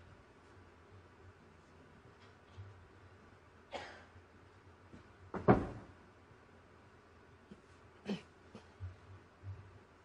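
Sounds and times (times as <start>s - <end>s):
person coughing: 3.7s - 4.1s, 8.0s - 8.8s.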